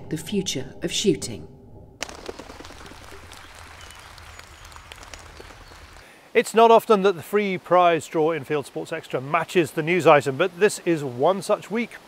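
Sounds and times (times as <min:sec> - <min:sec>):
distant applause: 0:02.0 - 0:06.1.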